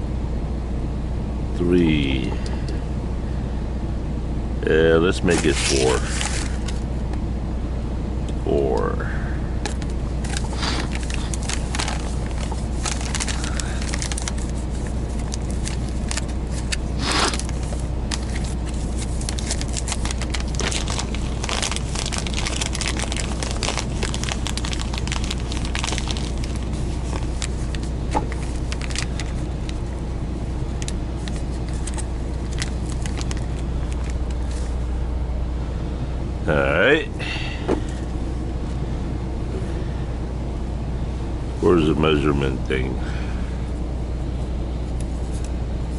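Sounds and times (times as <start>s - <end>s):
low engine hum: 0.0s - 45.9s
coffee bag crinkling: 5.2s - 6.8s, 9.8s - 30.0s, 30.8s - 34.8s.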